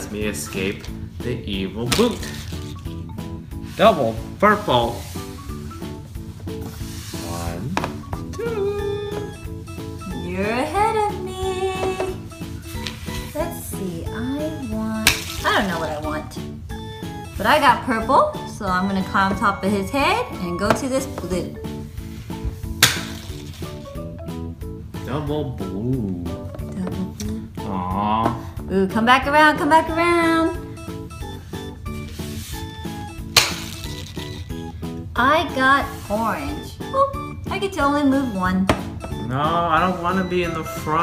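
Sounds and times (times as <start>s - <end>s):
background music: 0.0s - 41.0s.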